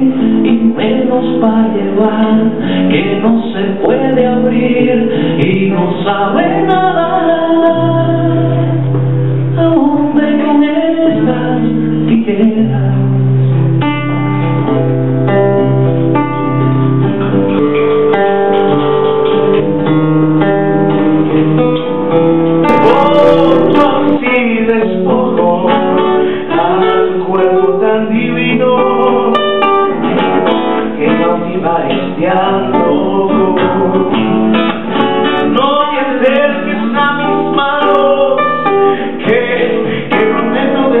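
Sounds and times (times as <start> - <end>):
classical guitar playing: 0.0 - 41.0.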